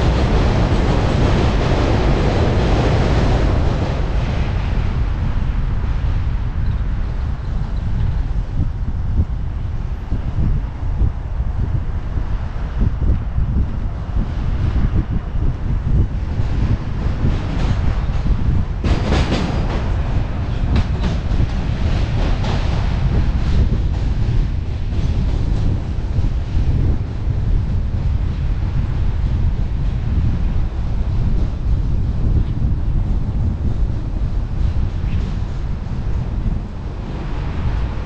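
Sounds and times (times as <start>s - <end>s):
subway train wheels clicking: 0.0s - 38.0s
wind rumble on camera: 0.0s - 38.0s.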